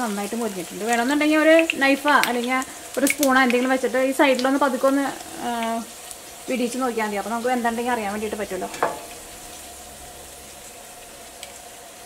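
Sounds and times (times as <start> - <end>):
potato slices sizzling in oil: 0.0 - 12.0
person talking: 0.2 - 5.9, 6.5 - 8.9.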